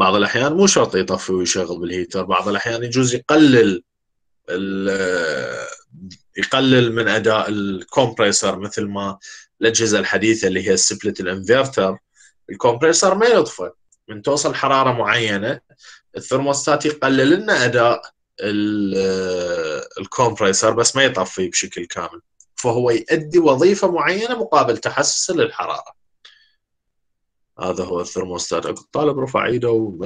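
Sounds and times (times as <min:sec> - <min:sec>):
man saying uhh: 0:04.5 - 0:06.4, 0:18.4 - 0:20.1
man's hesitation vowel: 0:04.5 - 0:06.5, 0:18.4 - 0:20.1.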